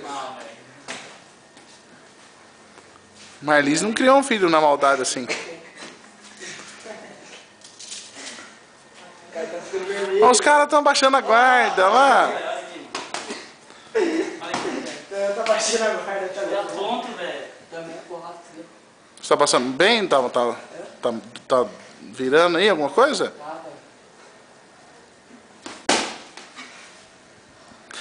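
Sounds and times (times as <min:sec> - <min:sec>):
boxing glove slap: 0:25.6 - 0:26.5.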